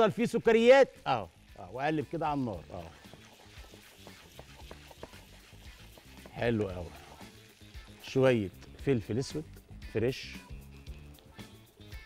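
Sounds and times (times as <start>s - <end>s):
soft sizzle: 0.0s - 12.0s
spatula scraping pan: 2.0s - 8.6s.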